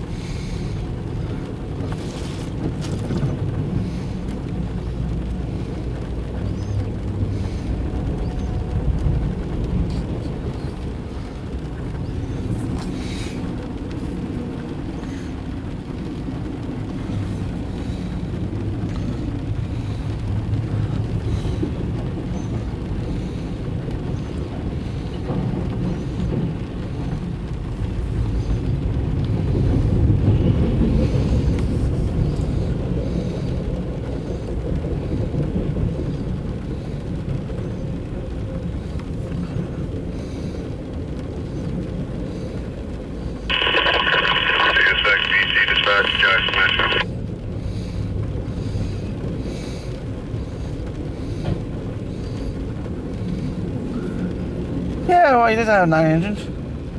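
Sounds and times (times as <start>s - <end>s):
train wheels rumbling on rail: 0.0s - 43.5s, 47.2s - 55.1s
radio burst: 43.5s - 47.1s.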